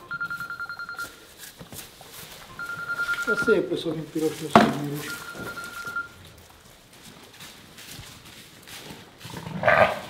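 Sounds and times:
shuffling and light knocks: 0.1s - 9.4s.

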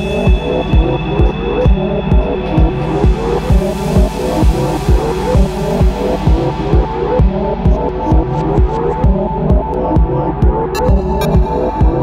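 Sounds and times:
kick drum: 0.0s - 12.0s
synth bass: 0.0s - 12.0s.

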